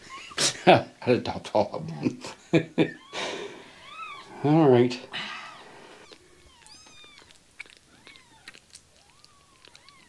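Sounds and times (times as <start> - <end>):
kitten mewing: 5.4 - 10.0.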